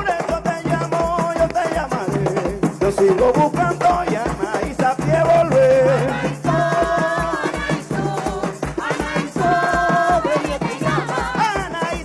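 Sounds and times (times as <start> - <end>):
man singing: 0.0 - 6.6, 11.3 - 12.0
hand drums playing steady beat: 0.0 - 12.0.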